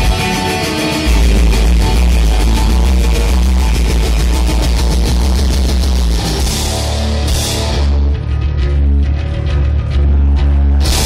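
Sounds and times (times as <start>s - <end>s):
heavy rock band playing live: 0.0s - 11.0s.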